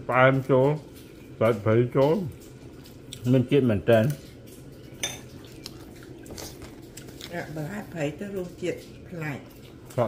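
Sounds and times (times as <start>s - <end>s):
porcelain tableware clinking: 5.0s - 5.4s.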